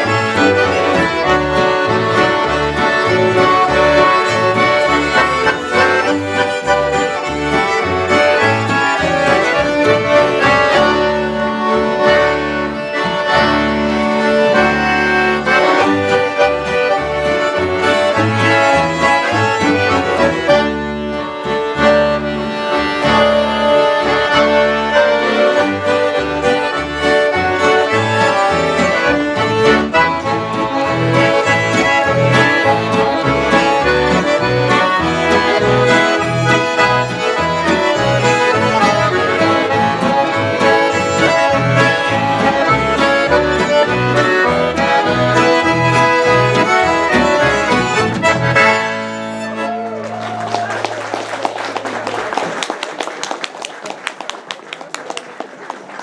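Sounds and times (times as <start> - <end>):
acoustic guitar: 0.0 - 50.0
low bass notes: 0.0 - 50.0
accordions playing: 0.0 - 50.2
fiddle: 0.0 - 50.6.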